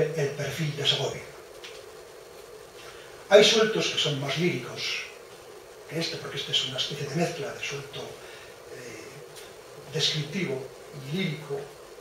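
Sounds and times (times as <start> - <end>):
man's drawn-out hesitation hum: 0.0 - 12.0.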